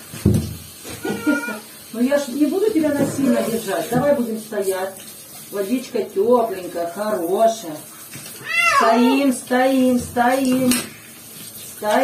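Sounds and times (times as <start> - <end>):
cat yowling: 1.0 - 1.7, 8.4 - 9.3.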